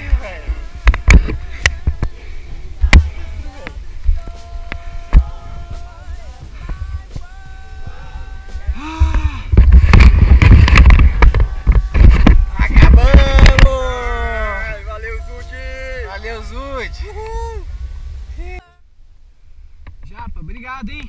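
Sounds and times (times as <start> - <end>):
wind buffeting microphone: 0.0 - 18.6
people whooping and yelling: 11.0 - 17.8.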